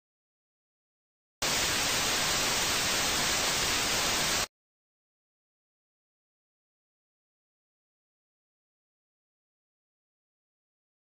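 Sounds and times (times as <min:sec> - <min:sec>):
static hiss: 0:01.4 - 0:04.5.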